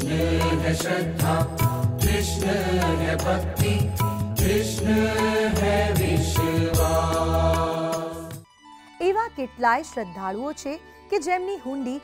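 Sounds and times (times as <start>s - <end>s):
percussion strikes: 0.0s - 8.4s.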